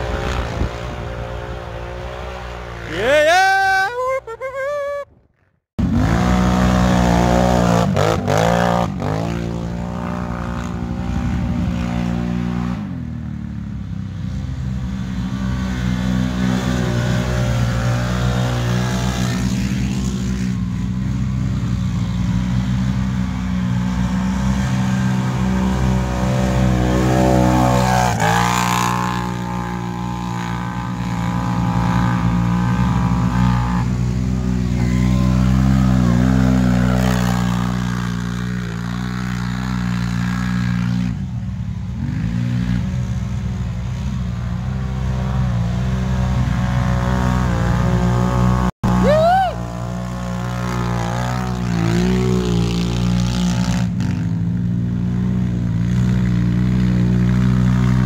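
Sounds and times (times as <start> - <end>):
atv engines revving: 0.0 - 5.2, 5.8 - 58.0.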